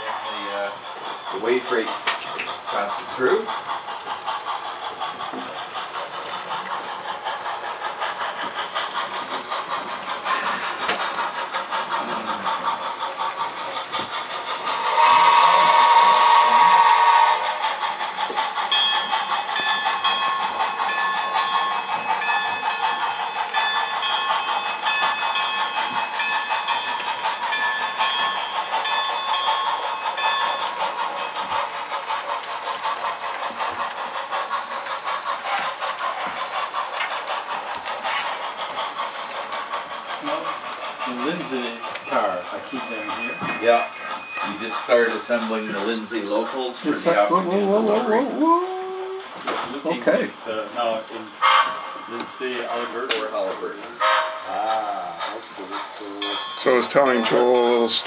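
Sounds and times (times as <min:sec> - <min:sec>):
model steam locomotive chuffing: 0:00.0 - 0:58.0
train whistle blast: 0:14.9 - 0:17.5.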